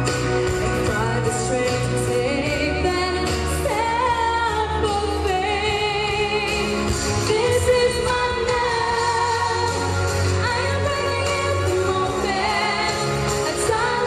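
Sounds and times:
backing track: 0.0 - 14.0
young woman singing pop ballad: 0.4 - 14.0.

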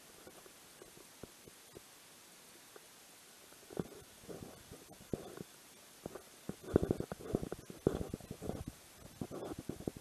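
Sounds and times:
clothing rubbing on microphone: 3.6 - 10.0.

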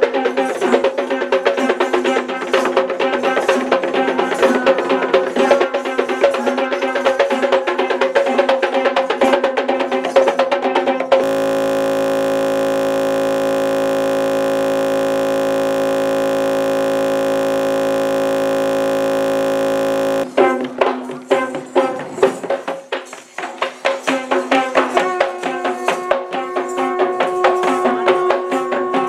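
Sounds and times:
flat buzzing tone: 11.2 - 20.3.

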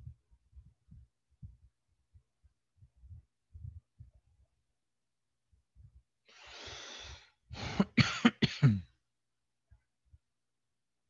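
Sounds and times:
breathy hiss: 6.3 - 7.8
person coughing: 7.6 - 8.9.

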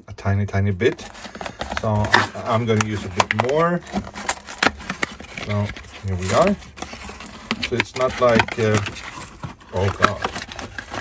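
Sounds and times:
person speaking: 0.0 - 4.2, 5.2 - 6.8, 7.5 - 9.0, 9.6 - 11.0
cardboard box packaging crinkling: 0.8 - 11.0.

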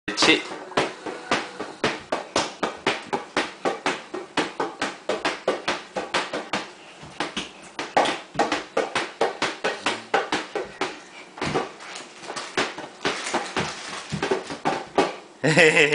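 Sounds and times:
rubber ball bouncing on tile floor: 0.2 - 15.2.

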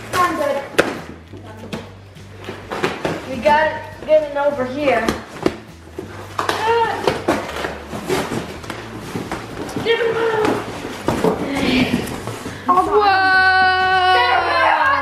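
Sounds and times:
flaps and tape rustling: 0.0 - 13.0
cardboard boxes being handled: 5.1 - 12.8.

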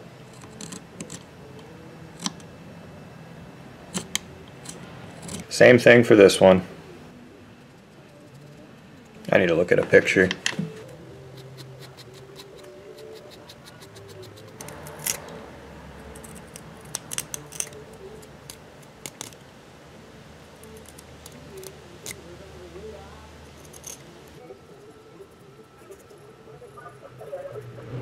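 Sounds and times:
knife whittling wood: 3.9 - 5.6, 11.2 - 15.4, 16.1 - 19.4
pencil marking wood: 11.4 - 15.2.

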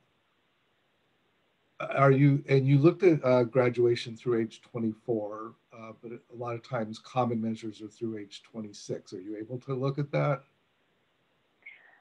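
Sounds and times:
man speaking: 1.8 - 10.4.

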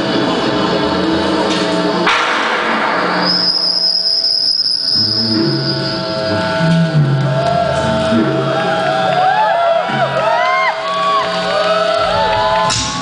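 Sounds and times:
burst of noise: 2.0 - 7.2
steady high electronic tone: 2.0 - 9.0
stepping bass line: 5.0 - 9.0.

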